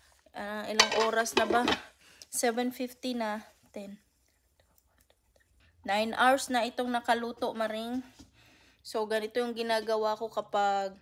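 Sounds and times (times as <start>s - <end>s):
woman's voice: 0.4s - 4.0s, 5.8s - 8.2s, 8.9s - 11.0s.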